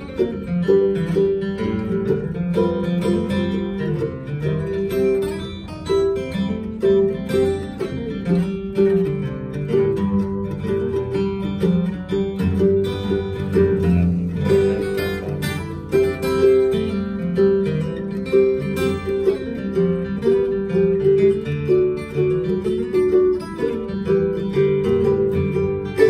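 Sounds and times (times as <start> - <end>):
acoustic guitar accompaniment: 0.0 - 26.0
picked mandolin notes: 0.0 - 26.0.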